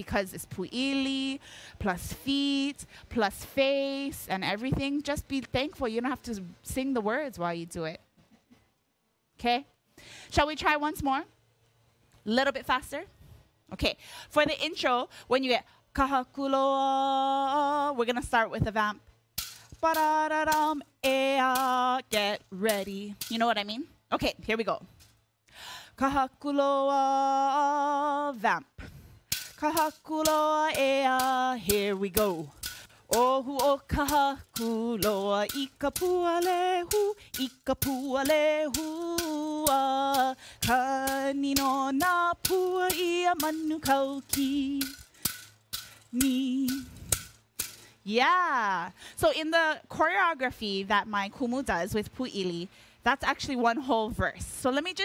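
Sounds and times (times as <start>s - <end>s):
woman singing with vibrato: 0.0s - 7.2s, 14.3s - 19.0s, 19.6s - 24.8s, 25.9s - 47.2s
bamboo rattle clack: 19.3s - 23.7s, 29.2s - 48.0s.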